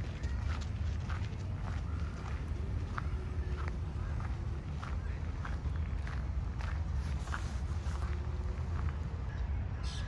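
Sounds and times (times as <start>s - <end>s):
footsteps on gravel: 0.0s - 9.0s.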